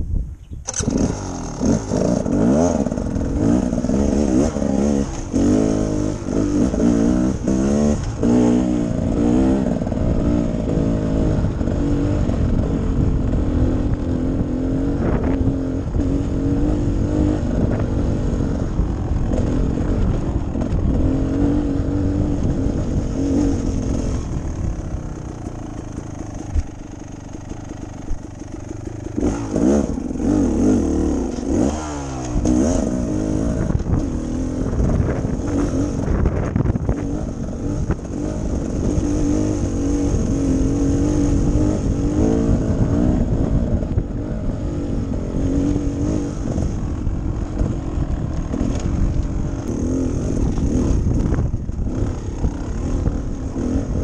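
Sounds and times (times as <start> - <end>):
dirt bike engine revving: 0.6 - 54.0.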